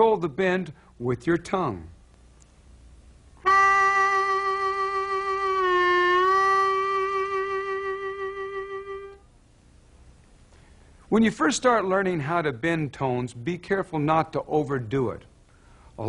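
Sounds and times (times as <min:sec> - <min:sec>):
harmonica long bent note: 0:03.4 - 0:09.3.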